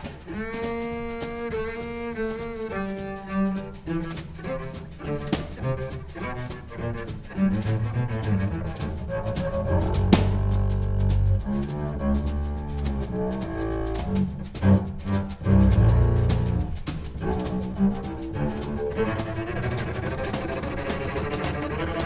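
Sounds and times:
bowed double bass notes: 0.0s - 22.0s
drum kit strikes: 8.8s - 11.8s.

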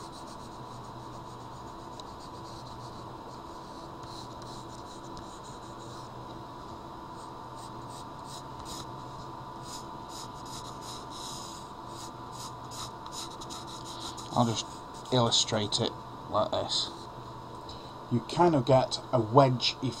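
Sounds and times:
pencil scratching on paper: 0.0s - 6.1s, 7.6s - 8.9s, 9.6s - 15.3s
low background hum: 0.0s - 20.0s.

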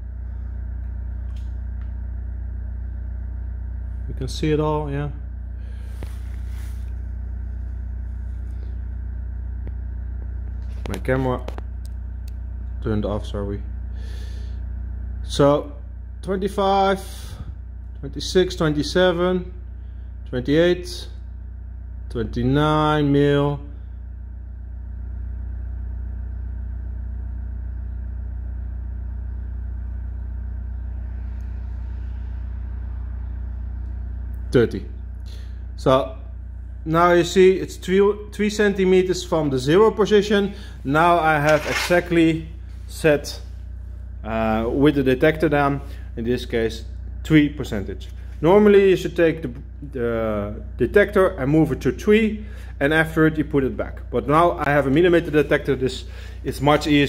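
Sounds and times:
steady low hum: 0.0s - 57.0s
brief rustle: 41.4s - 42.0s.

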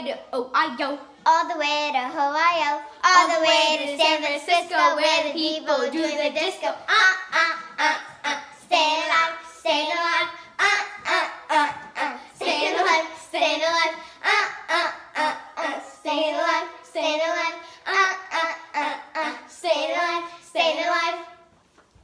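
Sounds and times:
girls chanting a cheer: 3.2s - 21.3s.

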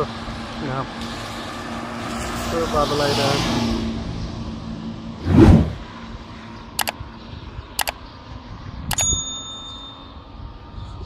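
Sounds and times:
mouse double-clicks: 8.9s - 9.1s
bell ding: 8.9s - 10.3s.

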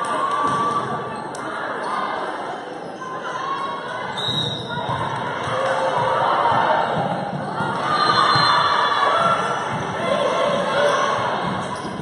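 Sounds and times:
spectators' voices: 0.0s - 12.0s.

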